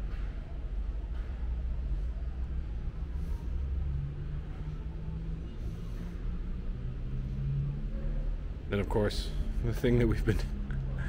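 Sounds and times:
faint wavering hum: 0.0 - 11.0
low rumble of indoor hall: 0.0 - 11.0.

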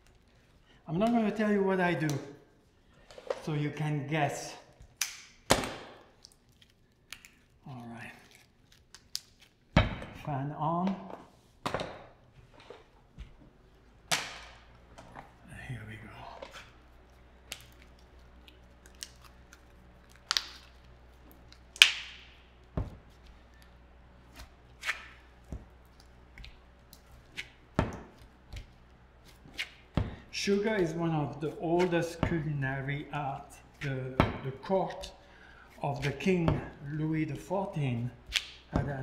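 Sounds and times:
desk fan humming: 11.6 - 39.0.

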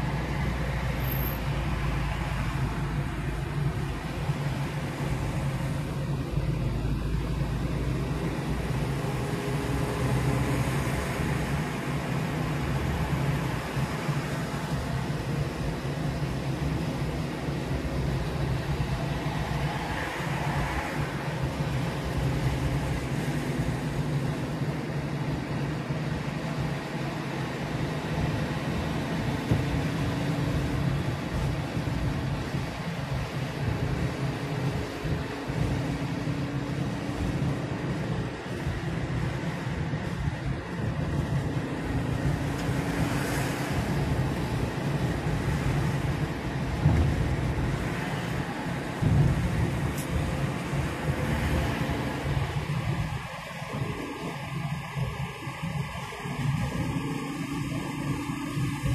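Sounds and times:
car engine and tyre hum: 0.0 - 58.9
road hiss: 0.0 - 58.9.

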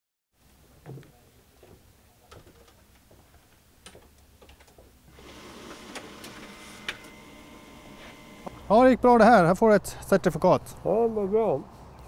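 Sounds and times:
office printer printing: 5.1 - 8.7.

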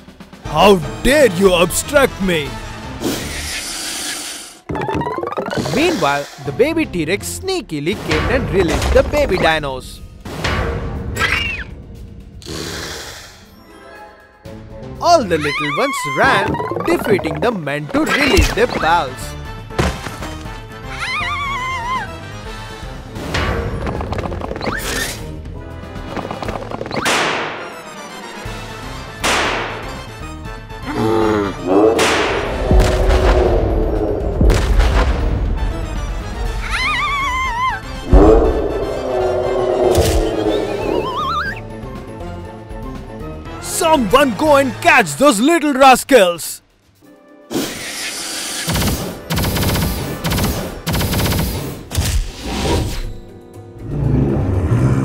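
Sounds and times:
background music: 0.0 - 55.0
cartoon music with rising tone: 4.7 - 5.8, 14.9 - 19.0, 36.4 - 41.8
wavering creature cry: 15.2 - 17.4, 20.9 - 22.2, 36.6 - 41.6.

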